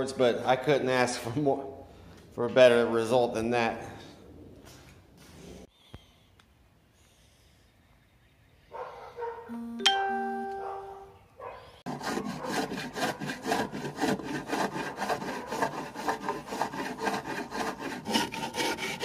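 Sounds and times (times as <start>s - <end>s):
chime-like ringing tone: 9.5s - 11.1s
sanding block rubbing wood: 11.9s - 19.0s.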